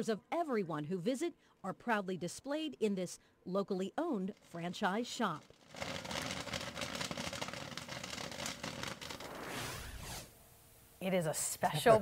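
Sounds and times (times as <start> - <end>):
popcorn spilling into metal bin: 5.4 - 9.3
whoosh: 9.3 - 10.3.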